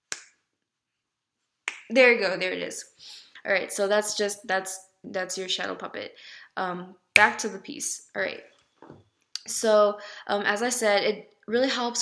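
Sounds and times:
finger snap: 0:00.1 - 0:00.4, 0:01.7 - 0:01.9.

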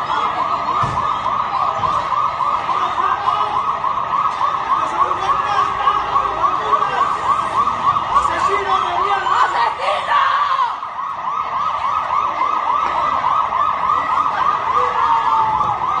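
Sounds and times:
police siren yelping: 0:00.0 - 0:16.0.

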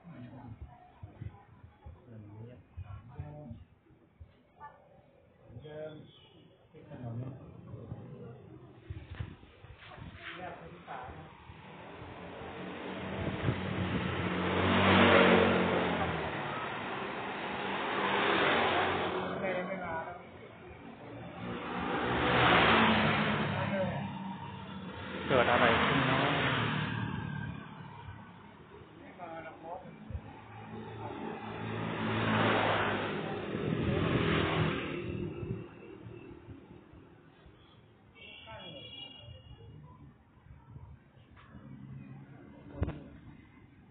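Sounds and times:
motorcycles passing: 0:10.3 - 0:37.4.

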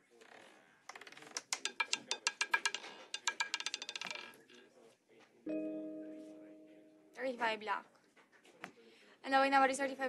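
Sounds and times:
roulette ball clattering: 0:00.9 - 0:04.7.

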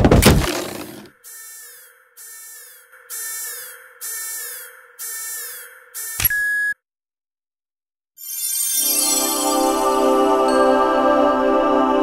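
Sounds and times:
pulsing electronic tone: 0:01.2 - 0:06.8.

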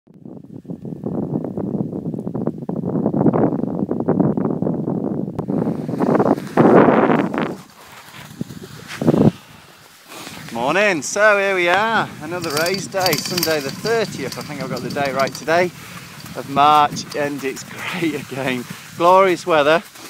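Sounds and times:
wind buffeting microphone: 0:00.1 - 0:09.8, 0:11.5 - 0:19.9
skis scraping over snow: 0:05.5 - 0:10.9, 0:11.7 - 0:20.0.

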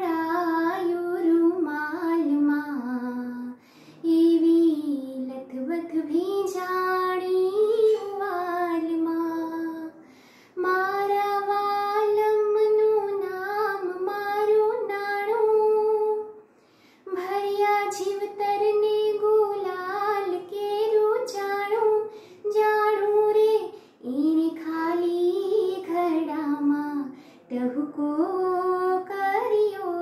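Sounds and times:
woman singing unaccompanied: 0:00.0 - 0:10.0, 0:10.6 - 0:16.4, 0:17.1 - 0:30.0.

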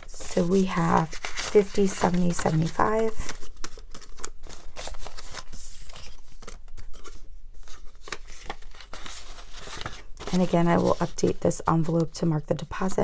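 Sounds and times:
banknotes rustling and crinkling: 0:00.0 - 0:13.0.

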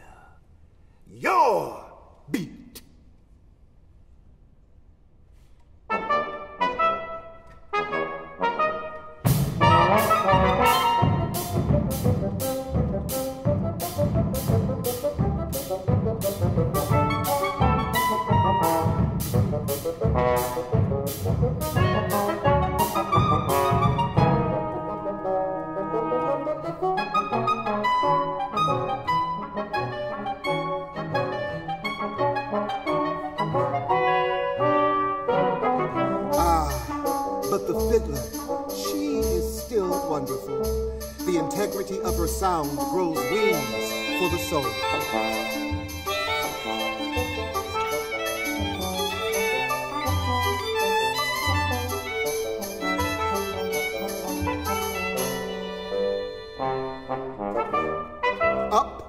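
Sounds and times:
small jazz ensemble playing: 0:05.8 - 0:59.0
steady drum beat: 0:36.4 - 0:52.2.

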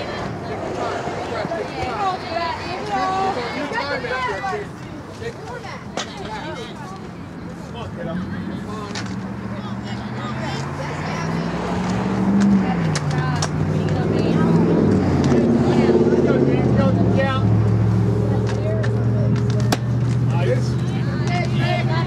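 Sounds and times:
vehicle engine running: 0:09.1 - 0:22.0.

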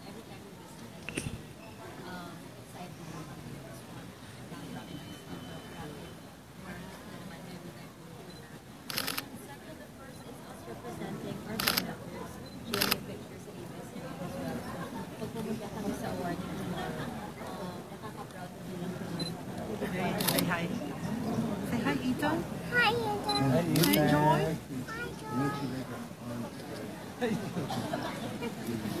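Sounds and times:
background chatter: 0:00.0 - 0:29.0
people talking: 0:00.0 - 0:29.0
camera shutter burst: 0:08.9 - 0:09.2, 0:20.2 - 0:20.4
camera shutter clicks: 0:08.9 - 0:09.2, 0:11.6 - 0:11.8, 0:12.7 - 0:13.0, 0:20.2 - 0:20.5, 0:23.8 - 0:24.0.

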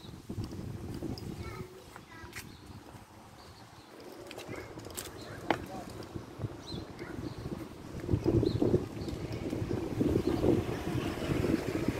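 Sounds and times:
footsteps on pavement: 0:00.0 - 0:09.9
faint voices: 0:01.0 - 0:07.7.

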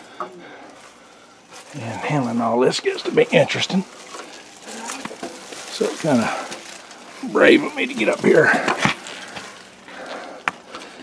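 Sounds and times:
faint rustling and handling: 0:00.0 - 0:11.0.

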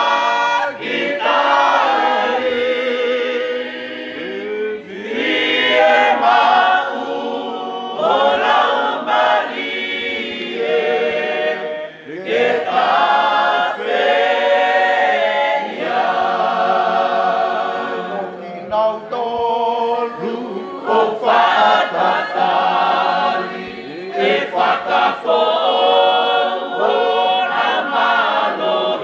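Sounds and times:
congregation singing a hymn: 0:00.0 - 0:29.0.

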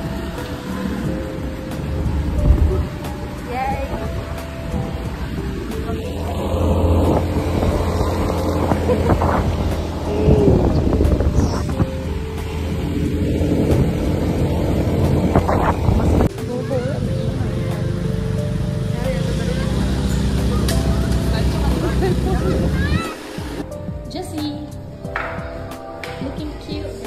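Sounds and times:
motorbike engine: 0:00.0 - 0:23.6
voices: 0:00.0 - 0:24.8, 0:25.6 - 0:27.0
background music: 0:00.0 - 0:27.0
wind: 0:00.0 - 0:27.0.

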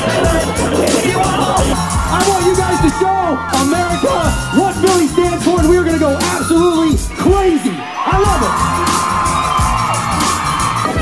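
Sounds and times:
background music: 0:00.0 - 0:11.0
crowd: 0:00.0 - 0:11.0.

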